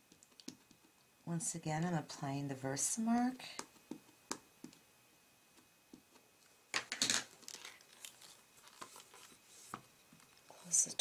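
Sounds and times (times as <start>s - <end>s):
paper rustling: 7.3s - 9.8s.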